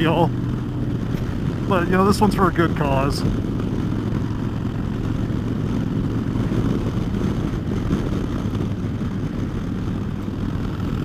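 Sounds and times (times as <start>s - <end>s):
motorcycle engine cruising: 0.0s - 11.0s.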